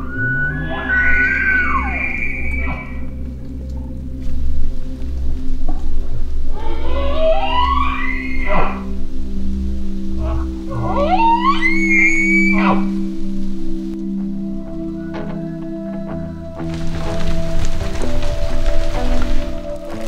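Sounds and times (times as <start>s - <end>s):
background music with low drone: 0.0s - 20.0s
elk bugling: 0.0s - 20.0s.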